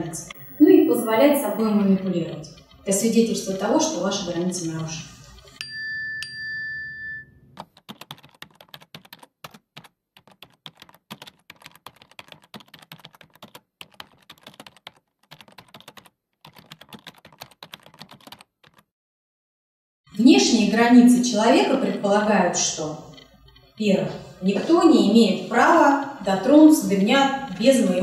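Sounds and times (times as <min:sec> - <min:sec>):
short chime: 0:05.6 - 0:07.5
keyboard typing clicks: 0:07.6 - 0:18.8.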